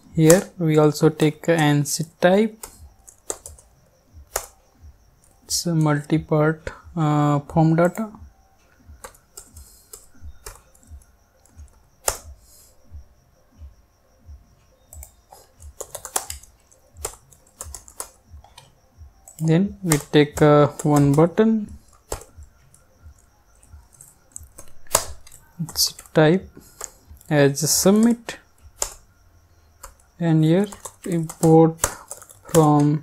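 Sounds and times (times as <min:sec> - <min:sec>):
computer keyboard keystrokes: 0:00.2 - 0:01.7, 0:02.5 - 0:03.7, 0:04.3 - 0:04.6, 0:09.0 - 0:12.4, 0:14.9 - 0:29.0, 0:29.8 - 0:33.0.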